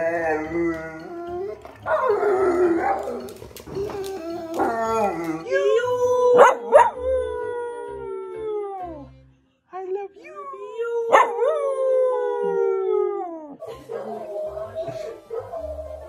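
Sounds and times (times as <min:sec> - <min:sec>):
dogs howling: 0:00.0 - 0:09.0, 0:11.1 - 0:16.0.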